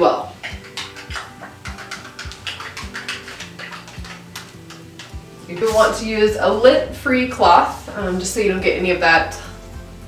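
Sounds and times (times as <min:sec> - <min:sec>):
soft background music: 0:00.0 - 0:10.0
knife scraping against a can: 0:00.4 - 0:05.7.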